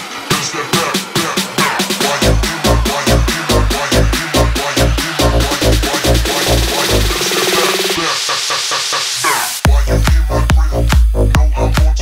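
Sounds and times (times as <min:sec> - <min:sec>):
rising hiss sweep: 0:00.0 - 0:09.7
electronic dance music: 0:00.0 - 0:12.0.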